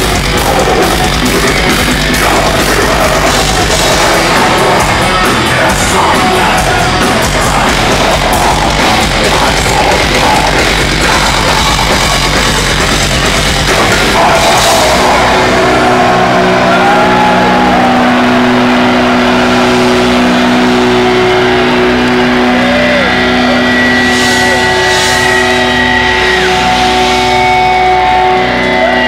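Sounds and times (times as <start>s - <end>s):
crowd cheering: 0.0s - 29.0s
guitar and bass drone: 0.0s - 29.0s
audience whistling: 14.1s - 29.0s.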